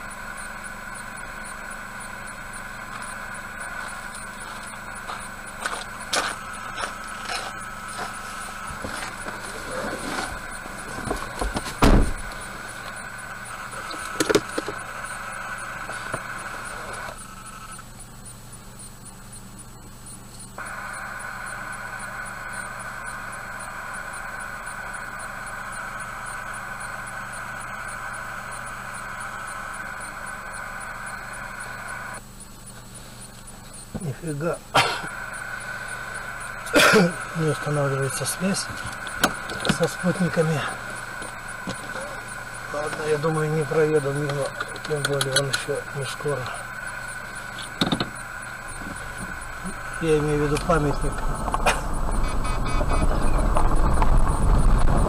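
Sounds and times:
car engine idling: 0.0s - 55.0s
steady high whir: 0.0s - 55.0s.

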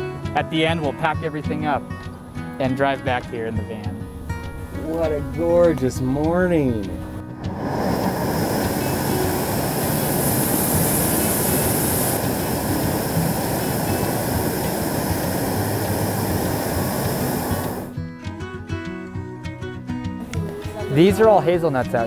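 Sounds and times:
propane burner roaring: 4.0s - 17.9s.

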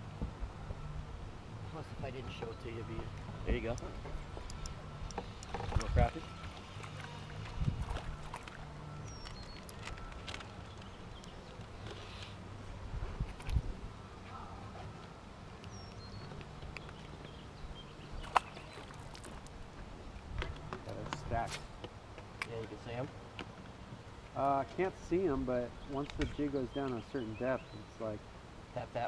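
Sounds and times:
low hum: 0.0s - 21.8s.

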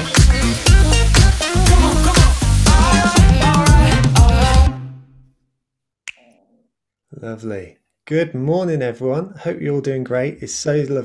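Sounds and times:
electronic music: 0.0s - 5.0s.

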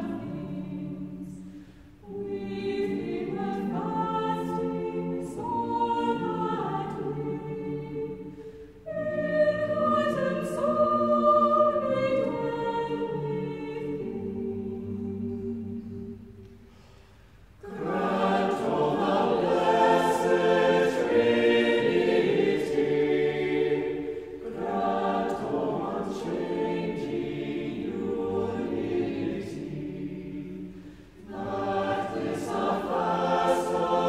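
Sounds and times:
choir singing unaccompanied: 0.0s - 16.5s, 17.6s - 34.0s.

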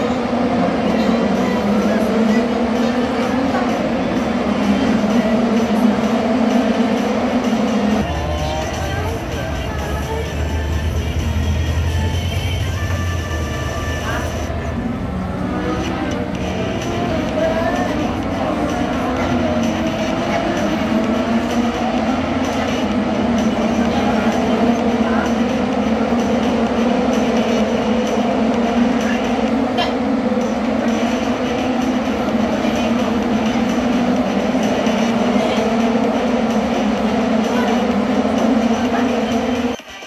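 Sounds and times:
race car engines droning: 0.0s - 39.8s.

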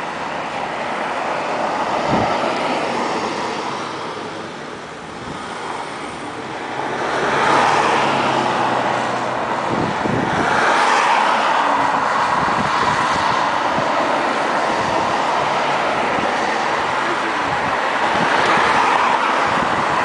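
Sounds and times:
road traffic passing: 0.0s - 20.0s.

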